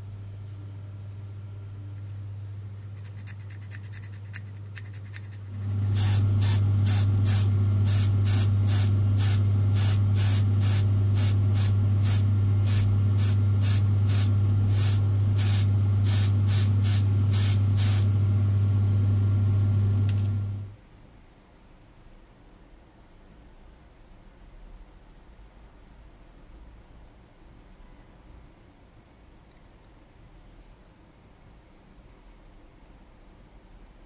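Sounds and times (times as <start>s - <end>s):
electric motor hum: 5.5s - 20.7s
paint spray hissing bursts: 5.6s - 18.1s.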